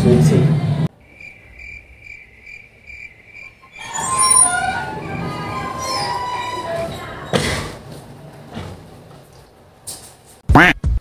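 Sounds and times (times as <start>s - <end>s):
cricket chirping: 0.9s - 4.5s.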